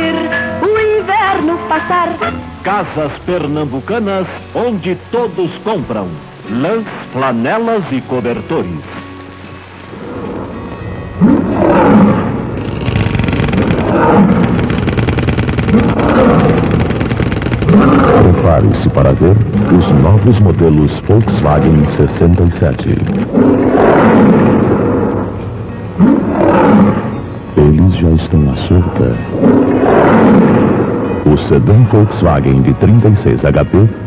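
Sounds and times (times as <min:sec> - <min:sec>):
soundtrack hiss: 0:00.0 - 0:34.0
loud roar with wavering pitch: 0:09.9 - 0:20.4, 0:23.1 - 0:27.4, 0:28.8 - 0:31.4.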